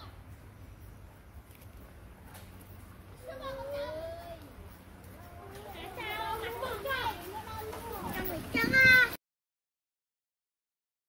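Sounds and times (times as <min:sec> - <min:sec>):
high-pitched voices chattering: 0:03.1 - 0:09.2.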